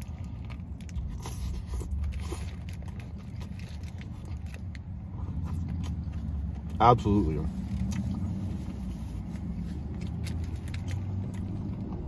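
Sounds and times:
chewing burger: 0.0 - 12.0
steady low rumble: 0.0 - 12.0.

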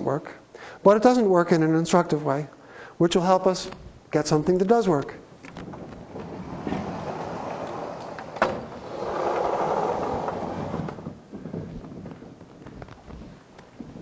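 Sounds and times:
chalkboard panels sliding: 5.5 - 11.2.

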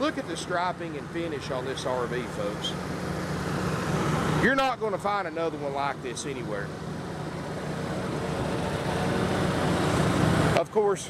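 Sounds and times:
generator engine hum: 0.0 - 11.0.

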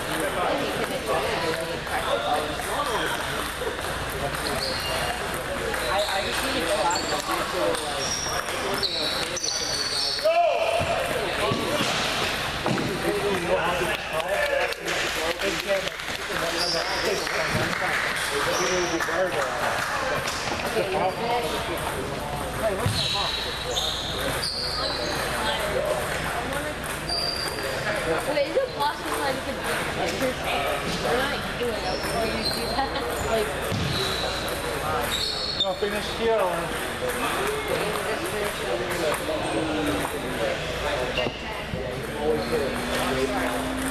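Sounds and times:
chatter of many voices: 0.0 - 43.9
people talking: 0.0 - 43.9
ping-pong balls clicking: 2.5 - 9.3, 21.4 - 22.2, 25.2 - 27.6, 29.0 - 29.8, 36.4 - 40.3, 41.9 - 43.9
shoes squeaking on floor: 4.4 - 12.8, 22.6 - 25.6, 26.9 - 27.9, 31.7 - 36.2, 41.0 - 43.9.

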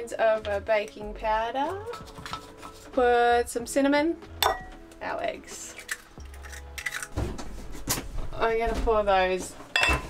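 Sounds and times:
glass clinks: 4.4 - 4.7, 9.8 - 10.0
eggs cracked against bowl rim: 5.7 - 7.2.

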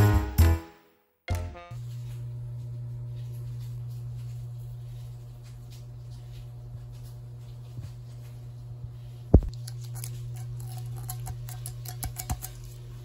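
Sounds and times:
steady low hum: 1.8 - 13.0.

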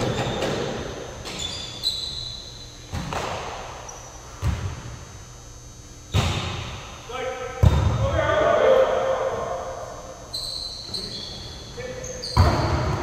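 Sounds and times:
volleyball hits echoing in gym: 0.0 - 1.5, 2.7 - 10.3, 12.2 - 13.0
player shouting: 7.1 - 9.8.

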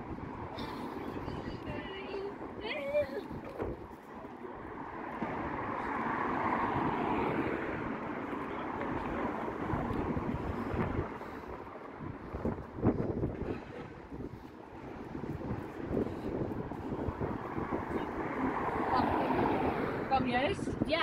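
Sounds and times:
cars passing: 0.0 - 21.0
wind on microphone: 8.8 - 21.0.

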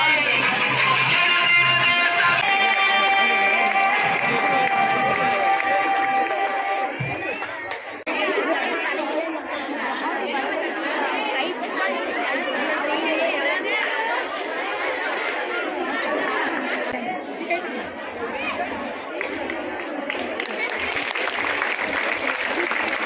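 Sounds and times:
children chattering: 0.0 - 23.0.

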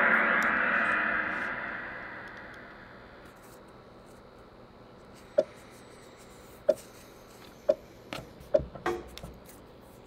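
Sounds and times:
gong-like crash: 0.0 - 3.3.

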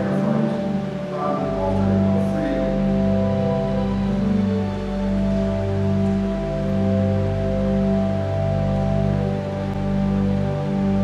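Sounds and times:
pipe organ chords: 0.0 - 11.0.

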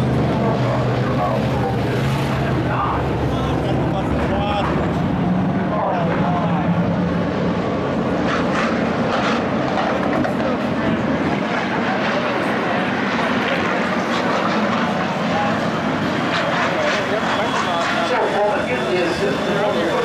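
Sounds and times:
crowd chattering: 0.0 - 20.0
race car engines droning: 0.0 - 20.0.

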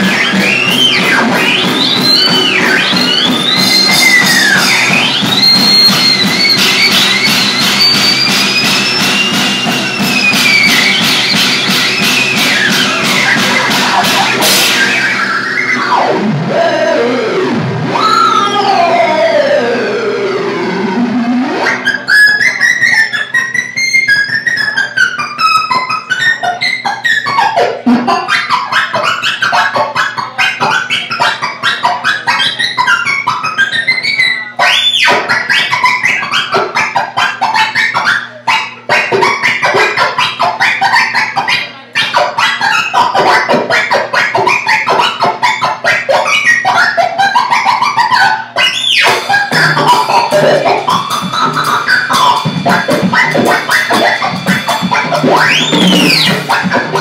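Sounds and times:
synthesizer tones sweeping down: 0.0 - 23.8, 48.6 - 57.0
drums: 0.0 - 57.0
warbling electronic bleeps: 0.0 - 57.0.

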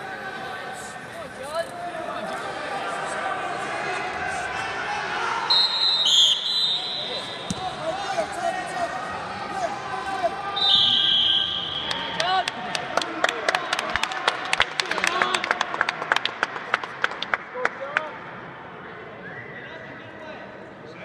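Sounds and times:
referee's whistle: 5.5 - 7.5, 10.6 - 12.2.

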